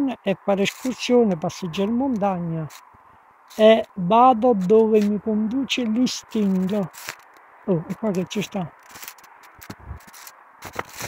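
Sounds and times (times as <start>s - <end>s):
footsteps in dry leaves: 6.0s - 7.4s, 8.0s - 11.0s.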